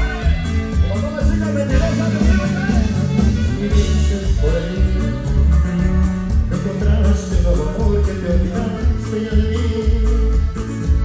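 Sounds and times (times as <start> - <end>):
drum kit: 0.0 - 11.0
electric bass: 0.0 - 11.0
twelve-string guitar strumming: 0.0 - 11.0.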